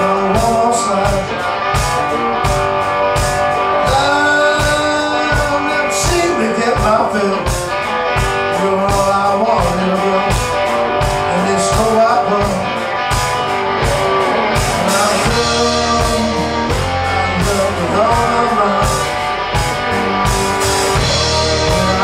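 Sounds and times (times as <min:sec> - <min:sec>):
man singing: 0:00.0 - 0:02.5, 0:03.4 - 0:13.0, 0:13.7 - 0:22.0
drum beat: 0:00.0 - 0:22.0
electric guitar: 0:00.0 - 0:22.0.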